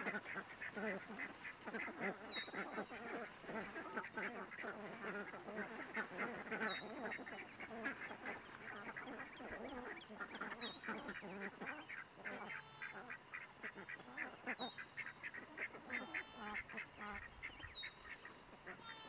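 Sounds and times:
ducks quacking: 0:00.0 - 0:19.0.

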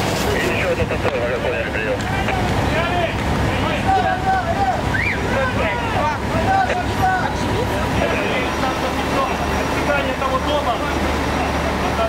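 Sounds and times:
low engine rumble: 0:00.0 - 0:12.0
voices calling out: 0:00.0 - 0:12.0.

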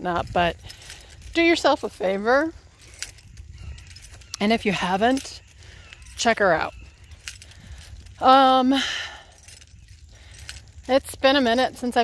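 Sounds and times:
light metallic jingling: 0:00.0 - 0:12.0.

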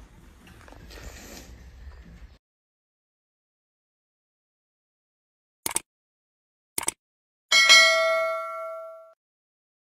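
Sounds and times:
bell chime: 0:07.5 - 0:09.2.

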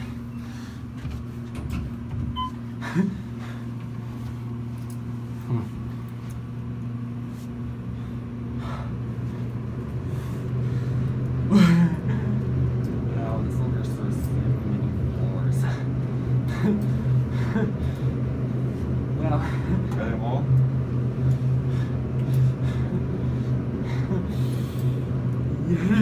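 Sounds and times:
elevator hum: 0:00.0 - 0:26.0
person laughing: 0:02.8 - 0:03.3, 0:25.6 - 0:26.0.

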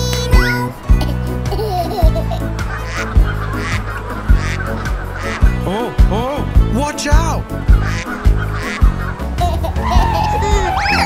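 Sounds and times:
children's music with steady beat: 0:00.0 - 0:11.0
cartoon goose honking: 0:07.8 - 0:09.0.

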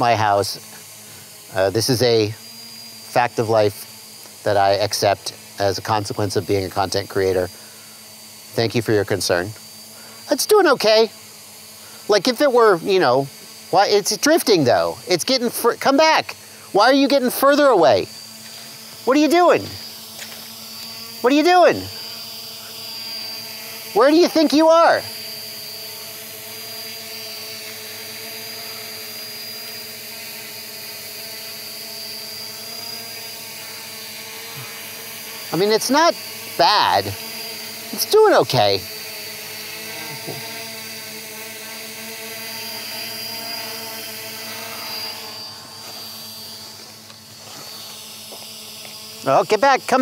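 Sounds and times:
quadcopter motors humming: 0:00.0 - 0:50.0
thin high whine: 0:00.0 - 0:50.0.

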